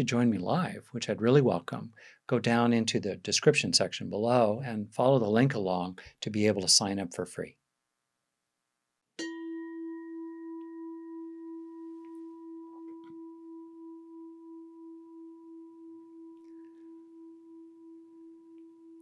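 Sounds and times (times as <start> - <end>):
singing bowl ringing: 9.2 - 19.0.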